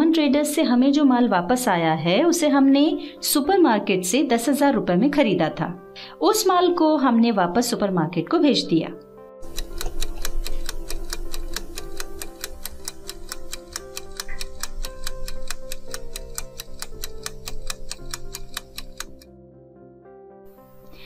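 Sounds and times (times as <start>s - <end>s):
soft background music: 0.0s - 21.0s
clock ticking timer: 9.4s - 19.3s.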